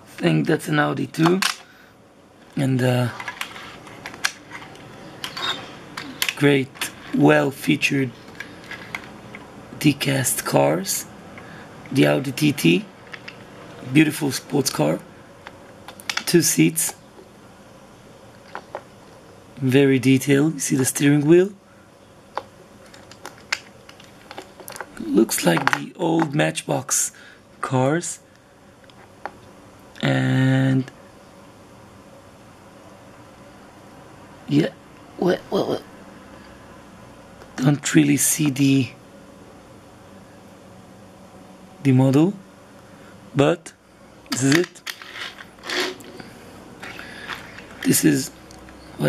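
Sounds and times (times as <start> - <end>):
toy cars rolling on hard surface: 44.5 - 46.1.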